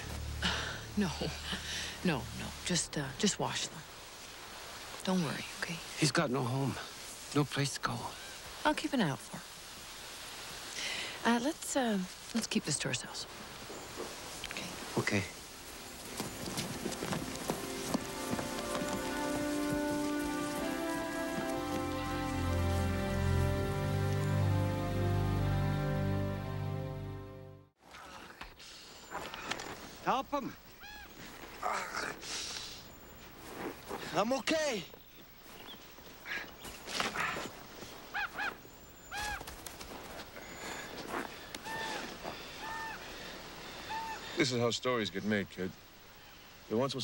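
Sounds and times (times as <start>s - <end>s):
geese honking: 15.5s - 27.0s, 41.6s - 44.4s.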